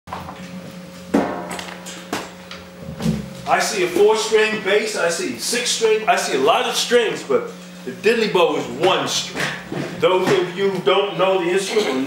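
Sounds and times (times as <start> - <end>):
steady low hum: 0.1 - 12.0.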